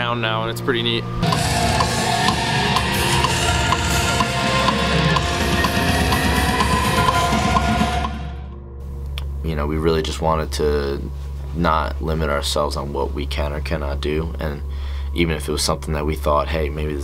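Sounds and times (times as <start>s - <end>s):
heavy metal music: 0.0s - 10.9s.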